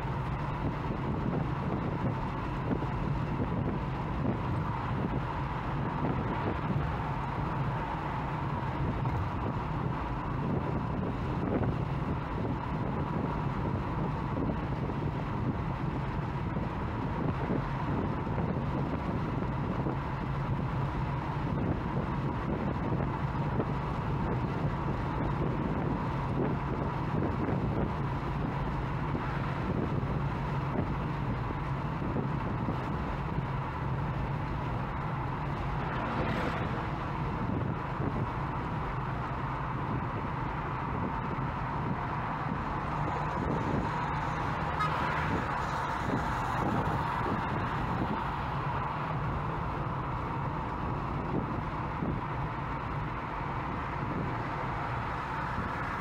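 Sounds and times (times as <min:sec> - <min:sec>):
tyre and engine rumble: 0:00.0 - 0:56.0
wind noise: 0:00.0 - 0:56.0.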